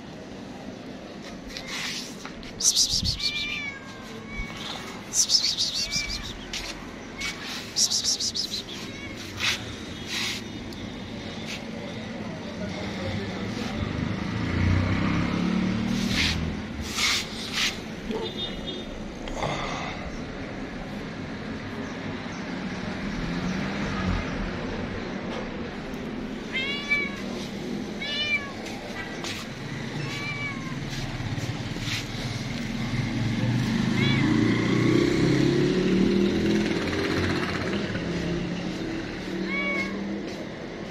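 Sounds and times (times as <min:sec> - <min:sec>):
vehicle engine hum: 0:00.0 - 0:40.9
cat meow: 0:02.8 - 0:07.6, 0:08.6 - 0:09.6, 0:26.5 - 0:28.7, 0:29.9 - 0:31.0, 0:33.9 - 0:34.6, 0:39.2 - 0:40.2
passing vehicle engine drone: 0:09.4 - 0:18.1, 0:28.8 - 0:39.4.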